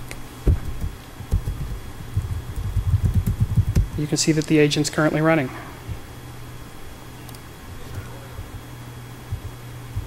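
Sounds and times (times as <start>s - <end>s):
typing on computer keyboard: 2.5s - 3.8s.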